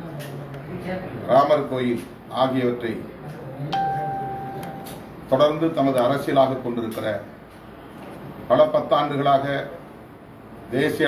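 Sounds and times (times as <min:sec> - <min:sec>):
faint murmur of voices: 0:00.0 - 0:11.0
steady beep: 0:03.8 - 0:05.0.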